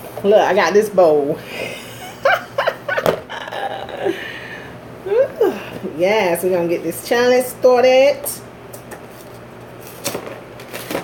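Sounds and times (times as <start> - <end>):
woman laughing: 1.5 - 5.7.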